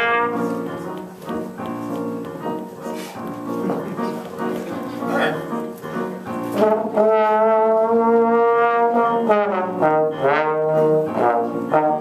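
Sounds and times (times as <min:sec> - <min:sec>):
trumpet and trombone duet: 0:00.0 - 0:00.7, 0:06.5 - 0:12.0.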